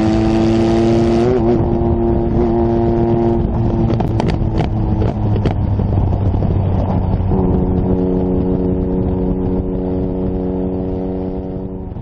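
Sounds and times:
sports car engine droning: 0:00.0 - 0:12.0.

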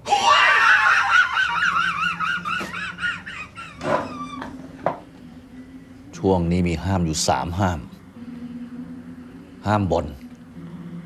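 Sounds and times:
wavering high-pitched scream: 0:00.0 - 0:02.4.

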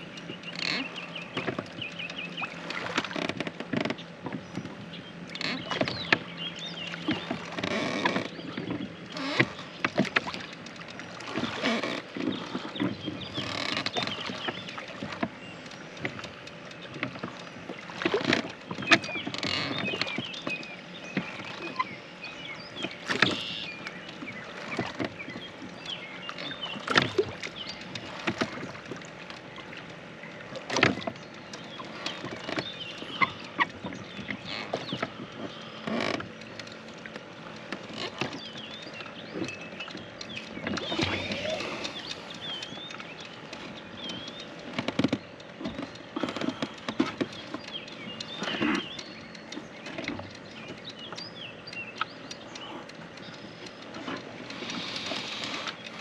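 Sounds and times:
lake water splashing: 0:00.0 - 0:56.0
oars knocking in oarlocks: 0:00.2 - 0:22.0, 0:22.6 - 0:29.9, 0:30.6 - 0:56.0.

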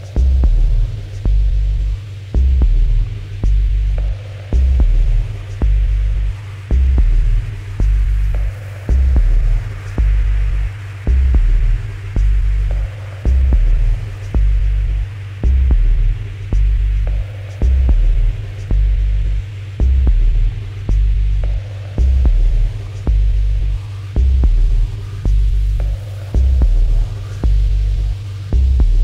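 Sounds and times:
deep throbbing sub-bass: 0:00.0 - 0:29.0
soft hiss-like chord wash: 0:00.0 - 0:29.0.

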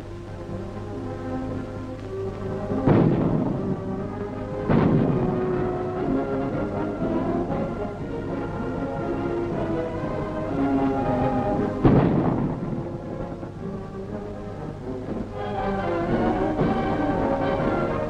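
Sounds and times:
orchestral film music: 0:00.0 - 0:18.0
heavy gun booms: 0:02.8 - 0:03.9, 0:04.6 - 0:05.7, 0:11.8 - 0:13.0.

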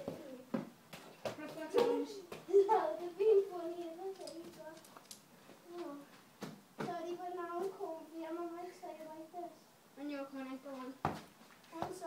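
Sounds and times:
child's voice: 0:00.0 - 0:00.6, 0:01.3 - 0:04.9, 0:05.6 - 0:06.2, 0:06.8 - 0:11.0, 0:11.7 - 0:12.0.

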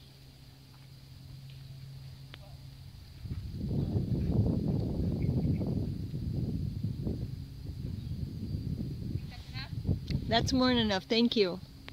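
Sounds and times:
low uneven rumble: 0:00.0 - 0:11.9.

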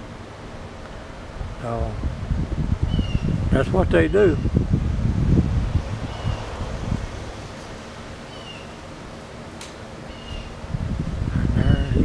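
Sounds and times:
low rumble: 0:04.5 - 0:08.3
high bird chirps: 0:06.0 - 0:07.3, 0:08.2 - 0:08.8, 0:10.1 - 0:10.6.

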